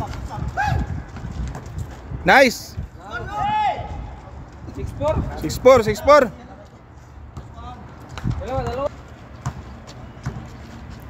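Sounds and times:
players' footsteps: 0.0s - 3.0s, 3.8s - 11.0s
basketball bouncing on concrete: 7.3s - 10.6s.

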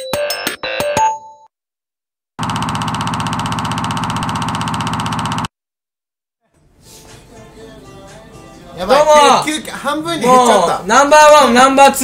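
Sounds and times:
rattling buzz sound effect: 2.4s - 5.5s.

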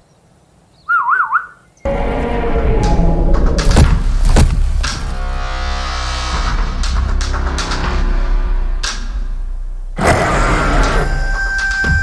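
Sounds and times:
low rumble: 1.9s - 10.0s.

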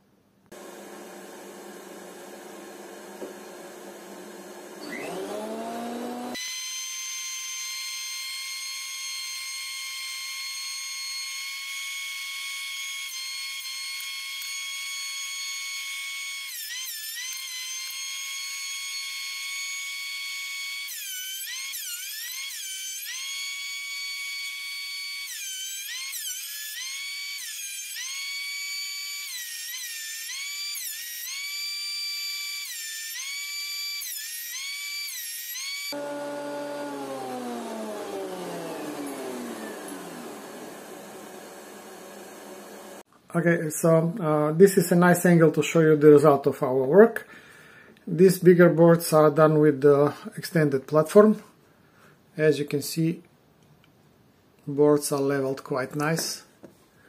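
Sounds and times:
thickness planer motor whine: 0.5s - 10.6s, 35.6s - 43.1s.

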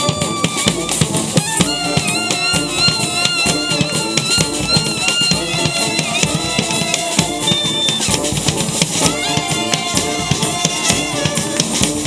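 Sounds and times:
brass street band playing: 0.0s - 12.0s
steady drum beat: 0.0s - 12.0s.

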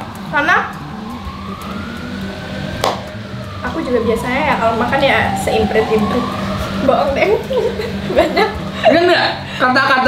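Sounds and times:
siren-like wail: 0.0s - 8.8s.

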